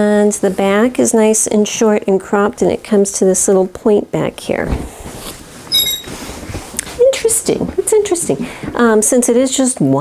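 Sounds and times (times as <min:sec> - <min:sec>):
high squeak of stand turning: 0:05.7 - 0:06.2.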